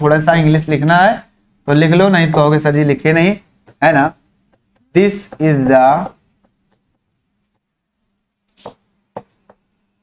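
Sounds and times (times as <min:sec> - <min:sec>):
faint steady hum: 0:00.0 - 0:10.0
chalk tapping and scraping on board: 0:03.6 - 0:07.7, 0:08.5 - 0:09.7.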